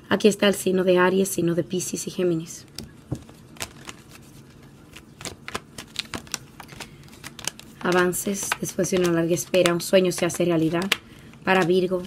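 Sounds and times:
cards shuffling clicks: 0:02.7 - 0:12.0.

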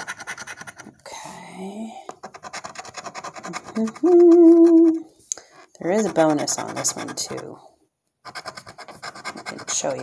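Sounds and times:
coin scratching lottery ticket: 0:00.0 - 0:00.9, 0:02.2 - 0:04.2, 0:05.8 - 0:07.5, 0:08.3 - 0:10.0.

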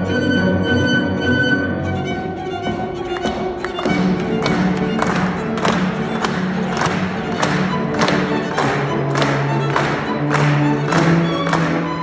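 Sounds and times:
chamber ensemble music: 0:00.0 - 0:12.0
violin holding notes: 0:00.0 - 0:12.0
steady beat of sharp strokes: 0:01.9 - 0:12.0.

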